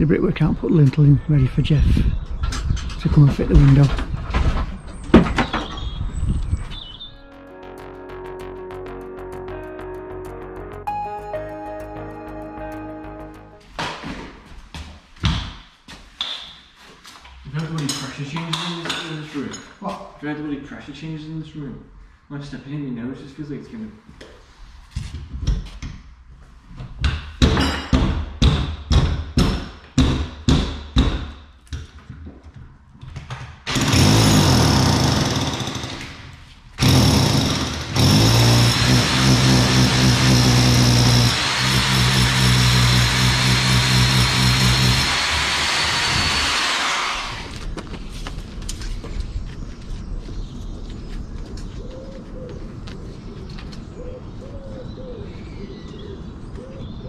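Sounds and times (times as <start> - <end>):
drill running with whine: 33.7 - 36.0, 36.8 - 47.6.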